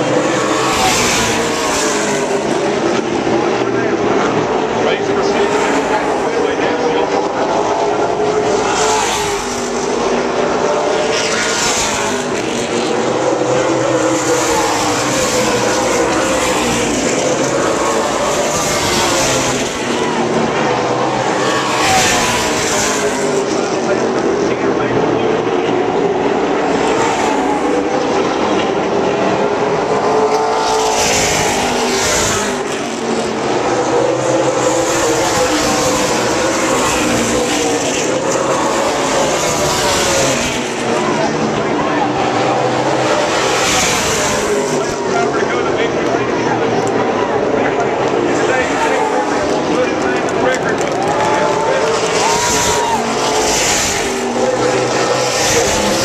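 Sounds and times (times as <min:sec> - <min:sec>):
race car engines roaring: 0:00.0 - 0:56.0.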